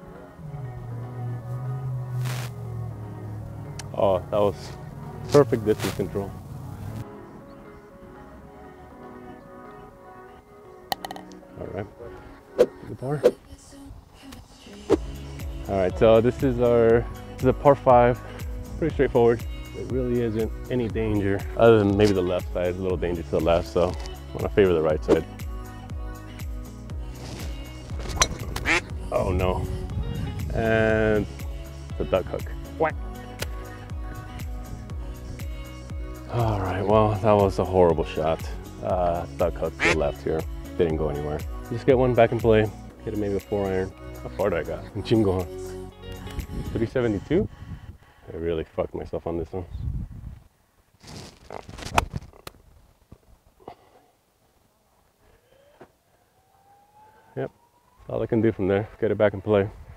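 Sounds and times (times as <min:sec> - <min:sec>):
faint rising tone: 0:00.0 - 0:05.3, 0:56.0 - 0:58.4
background music with steady beat: 0:00.0 - 0:47.5
short rising pitched sound: 0:00.4 - 0:03.1
golf club striking ball: 0:28.0 - 0:28.8.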